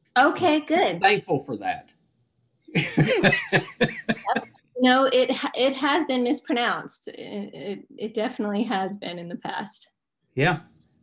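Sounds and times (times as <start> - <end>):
man laughing: 2.8 - 4.5.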